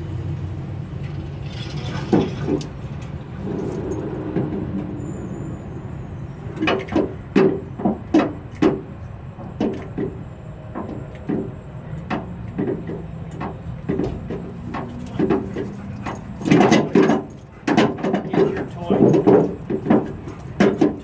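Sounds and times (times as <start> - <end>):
rubber tire toy creaking and knocking: 6.5 - 21.0.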